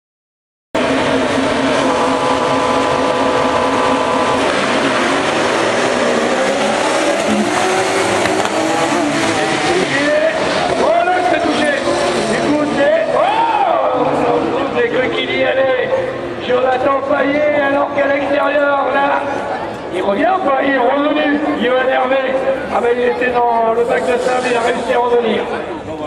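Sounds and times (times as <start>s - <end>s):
race car engines revving: 0.8s - 26.0s.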